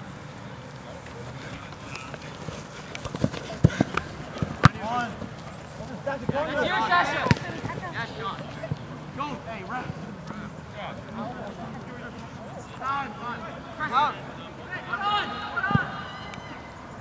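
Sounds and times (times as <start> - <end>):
players shouting: 1.3 - 12.0, 12.6 - 17.0
ball being kicked: 2.9 - 5.0, 7.2 - 7.9.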